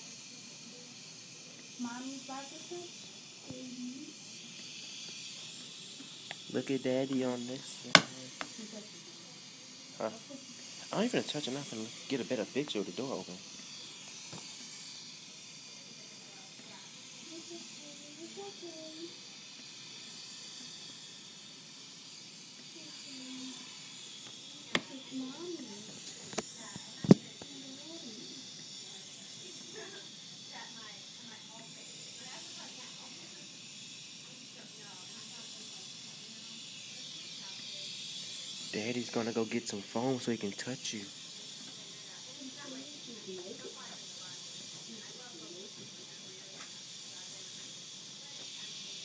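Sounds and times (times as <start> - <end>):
hiss of air from breathing equipment: 0.0 - 49.0
faint murmuring voices: 22.6 - 39.8, 40.5 - 49.0.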